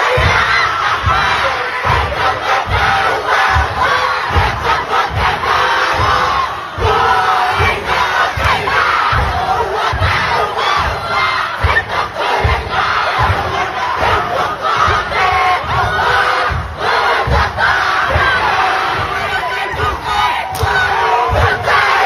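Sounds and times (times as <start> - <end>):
low thuds: 0.0 - 22.0.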